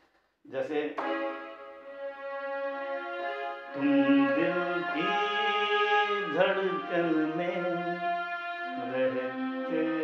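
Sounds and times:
electronic keyboard melody: 1.0 - 10.0
man singing: 3.7 - 10.0.

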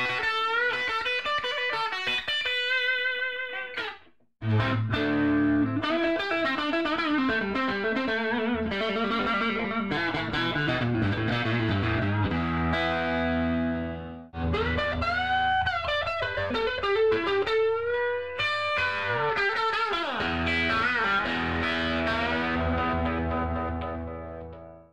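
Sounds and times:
electric guitar playing: 0.0 - 24.9.

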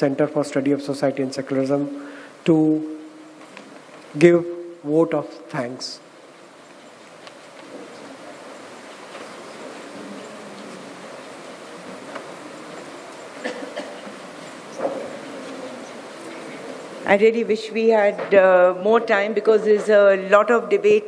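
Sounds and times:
faint voices: 5.6 - 18.3
audience murmur: 7.5 - 17.1.

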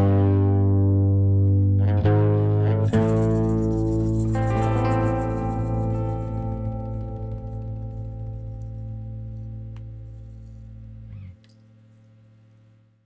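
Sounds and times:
guitar chord ringing: 0.0 - 11.4.

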